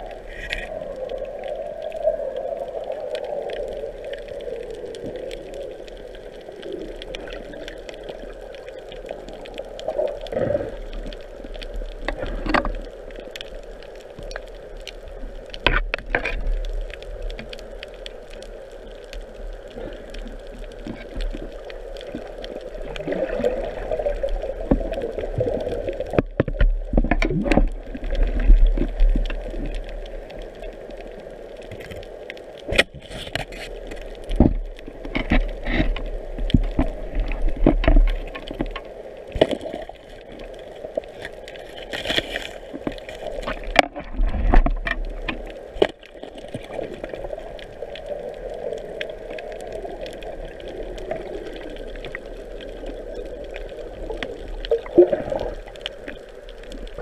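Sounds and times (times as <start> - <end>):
muffled underwater rush: 0.0 - 57.0
underwater clicks and knocks: 0.2 - 0.8, 10.2 - 13.5, 15.4 - 17.6, 20.1 - 30.4, 31.6 - 47.7.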